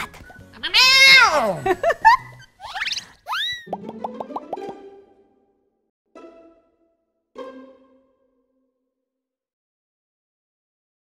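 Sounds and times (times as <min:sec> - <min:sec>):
cartoon plop sound effects: 0:03.3 - 0:04.9.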